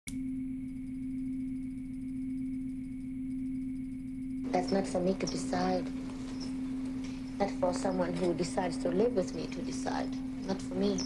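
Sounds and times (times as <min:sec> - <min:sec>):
low drone tone: 0:00.1 - 0:11.0
faint high tone: 0:04.5 - 0:11.0.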